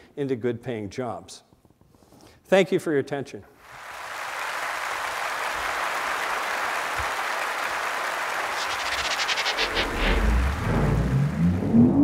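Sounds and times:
audience applauding: 0:03.6 - 0:11.8
electronic music sting: 0:08.6 - 0:12.0.

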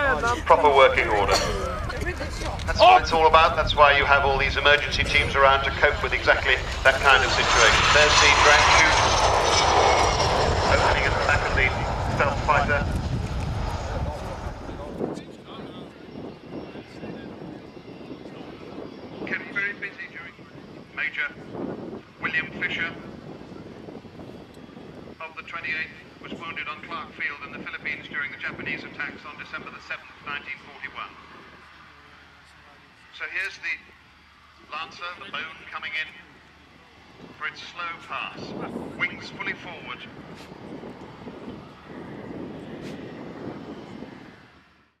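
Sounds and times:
jet engines at low power: 0:00.0 - 0:45.0.

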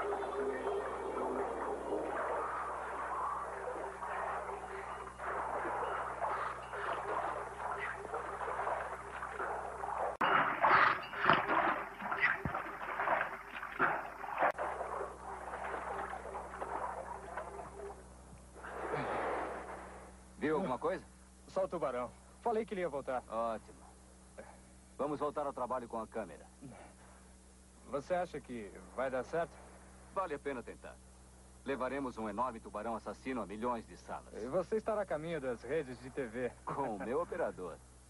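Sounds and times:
water splashing: 0:00.0 - 0:20.1.

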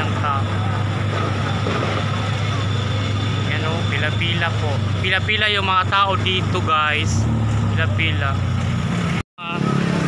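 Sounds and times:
street noise: 0:00.0 - 0:10.0
vehicle engine hum: 0:00.0 - 0:10.0.

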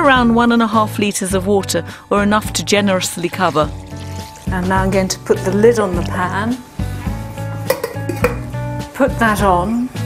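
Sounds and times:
background music: 0:00.0 - 0:10.0
steel lid clinking on pan: 0:07.7 - 0:08.5.

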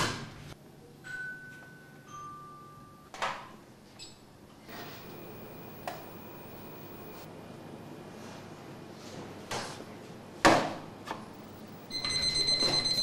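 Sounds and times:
faint steady hiss: 0:04.7 - 0:07.8.

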